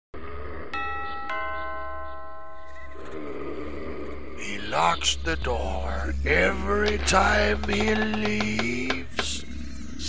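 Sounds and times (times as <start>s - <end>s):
two-tone doorbell chime: 0.8s - 3.1s
low steady hum: 2.4s - 10.0s.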